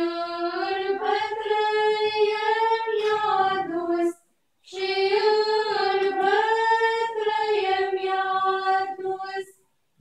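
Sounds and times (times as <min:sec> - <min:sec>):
women's choir singing a hymn: 0:00.0 - 0:09.6.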